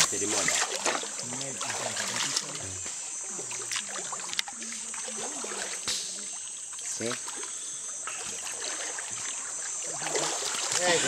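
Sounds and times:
feet sloshing through water: 0:00.0 - 0:11.0
high-pitched insect drone: 0:00.0 - 0:11.0
voices calling and talking: 0:00.0 - 0:11.0.

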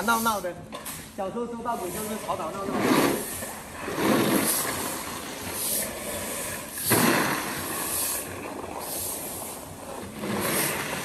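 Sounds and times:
brooms and rakes scraping grain: 0:01.8 - 0:11.0.

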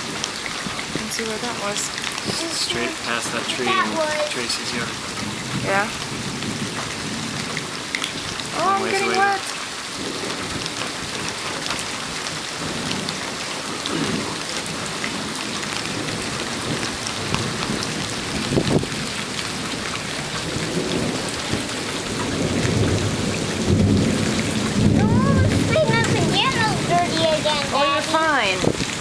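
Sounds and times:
steady rain falling: 0:00.0 - 0:29.0
low rumble of thunder: 0:04.2 - 0:29.0.

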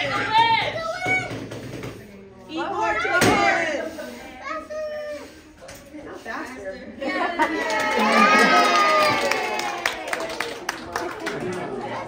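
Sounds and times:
children talking and calling out: 0:00.0 - 0:01.7, 0:02.6 - 0:05.7.

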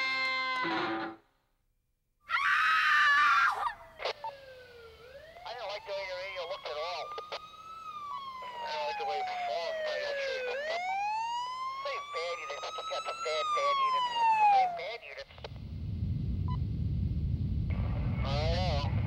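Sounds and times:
police siren wailing: 0:03.0 - 0:15.0
low rumble: 0:15.5 - 0:19.0.

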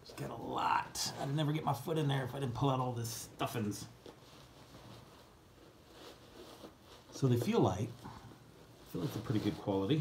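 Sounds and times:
faint rustling of packing stuffing: 0:00.0 - 0:10.0.

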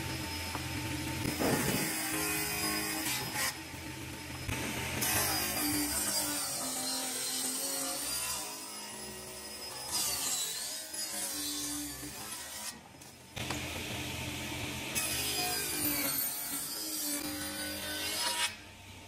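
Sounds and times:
tool cutting wood: 0:00.0 - 0:14.2.

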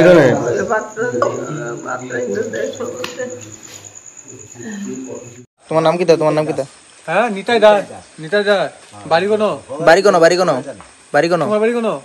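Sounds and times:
cricket trilling: 0:00.0 - 0:12.0.

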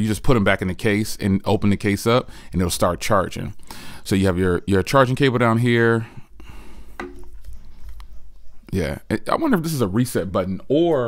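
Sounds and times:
soft clicks and taps: 0:06.9 - 0:08.7.

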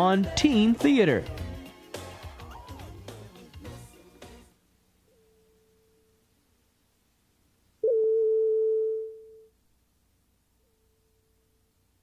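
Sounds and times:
steady electronic test tone: 0:07.8 - 0:09.5.

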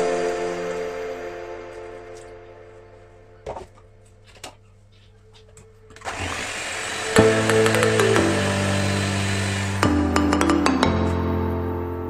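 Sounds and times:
background music: 0:00.0 - 0:04.3, 0:05.2 - 0:12.0
electric hand mixer whisking: 0:06.0 - 0:10.4.

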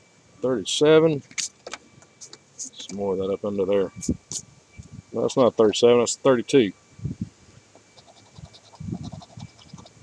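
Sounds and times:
coin scratching lottery ticket: 0:08.0 - 0:09.9.

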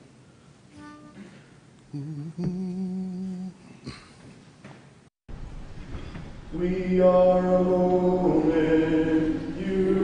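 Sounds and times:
man humming: 0:00.8 - 0:04.2.

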